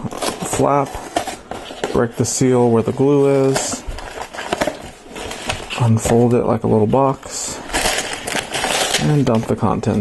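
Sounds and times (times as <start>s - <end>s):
person speaking: 0.0s - 1.2s, 1.8s - 3.9s, 5.6s - 7.9s, 8.8s - 10.0s
cardboard rustling: 0.0s - 10.0s.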